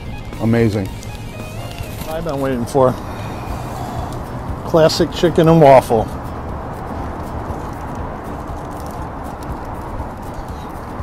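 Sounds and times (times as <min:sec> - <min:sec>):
low rumbling outdoor noise: 0:00.0 - 0:11.0.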